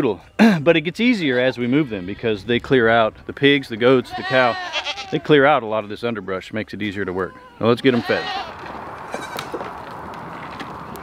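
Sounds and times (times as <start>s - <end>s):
goats bleating faintly: 4.0s - 5.4s, 7.2s - 9.5s
rustling background: 8.4s - 11.0s.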